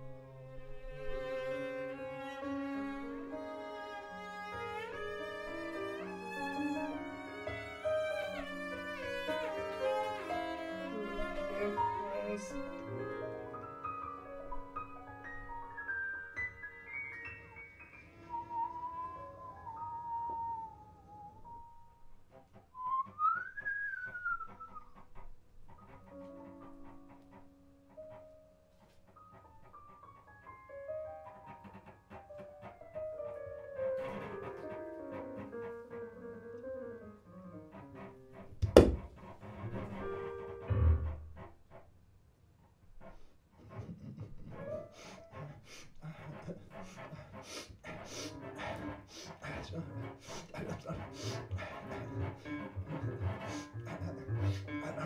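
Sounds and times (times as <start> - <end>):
high whistle-like tone: 18.1 - 21.9, 22.7 - 25.0.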